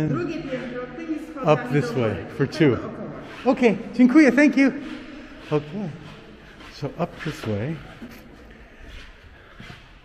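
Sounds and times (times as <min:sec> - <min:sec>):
footsteps on stone floor: 0:00.0 - 0:10.0.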